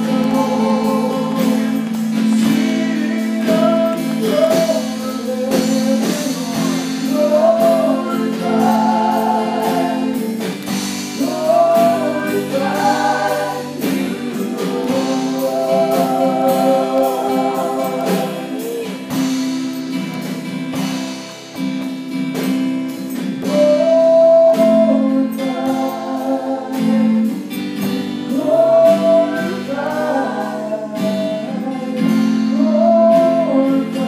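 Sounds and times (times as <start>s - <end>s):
person singing: 0.0s - 19.4s, 23.4s - 34.0s
acoustic guitar strumming: 0.0s - 34.0s.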